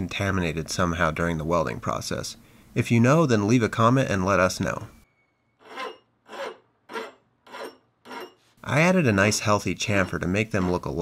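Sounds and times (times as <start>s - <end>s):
hand file rasping on metal: 5.6s - 8.5s, 9.2s - 11.0s.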